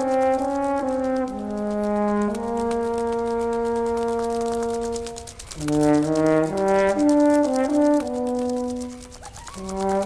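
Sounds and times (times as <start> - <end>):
brass instrument long note: 0.4 - 8.5.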